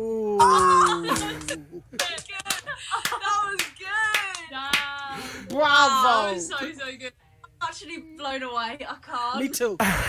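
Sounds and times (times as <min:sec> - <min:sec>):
excited voices: 0:00.4 - 0:06.6
hand clapping: 0:00.6 - 0:05.0.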